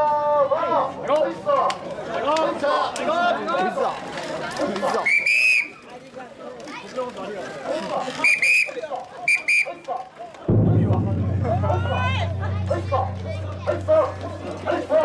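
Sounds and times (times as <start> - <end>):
crowd chatter: 0.0 - 15.0
steady low hum: 10.5 - 14.7.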